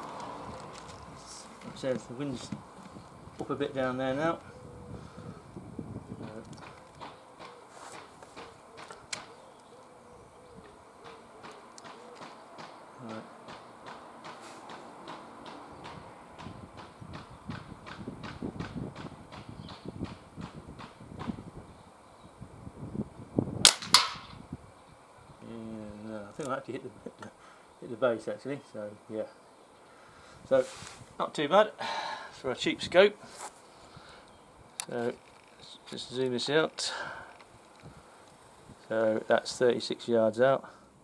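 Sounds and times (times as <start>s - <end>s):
pellet striking target: 23.6s - 24.3s
air rifle firing: 23.6s - 24.4s.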